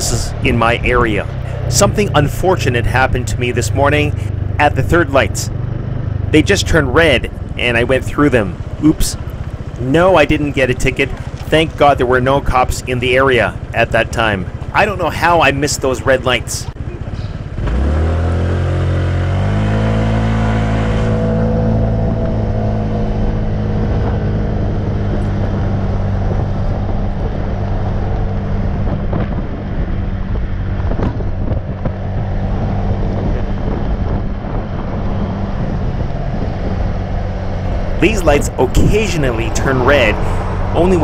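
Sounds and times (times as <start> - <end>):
motorcycle engine accelerating: 0.0 - 41.0
wind and road noise: 0.0 - 41.0.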